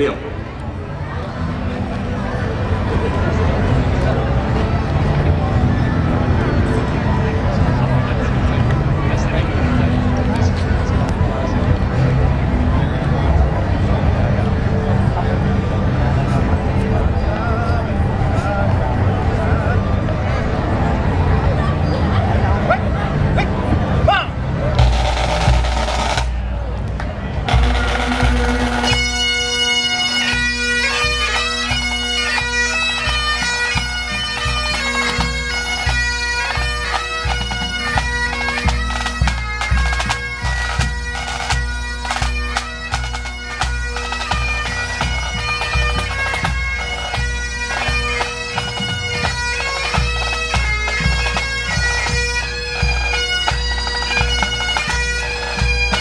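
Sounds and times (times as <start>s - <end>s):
bagpipe drones: 0.9s - 56.0s
drum rolls: 24.8s - 26.5s, 27.4s - 29.4s
bagpipe chanters playing a tune: 27.5s - 56.0s.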